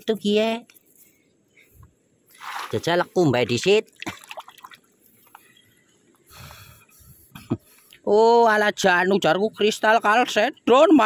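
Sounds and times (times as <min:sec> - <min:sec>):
hand rinsing stone in water: 0:02.3 - 0:03.0, 0:03.8 - 0:04.8.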